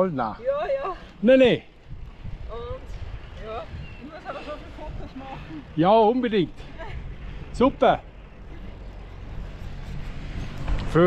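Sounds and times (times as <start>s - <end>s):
bicycle tyres on asphalt: 0.0s - 11.0s
wind on microphone: 0.4s - 11.0s.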